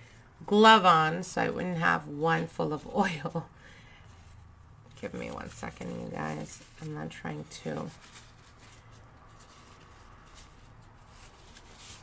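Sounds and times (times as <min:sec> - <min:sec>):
hands rustling: 0:05.0 - 0:12.0.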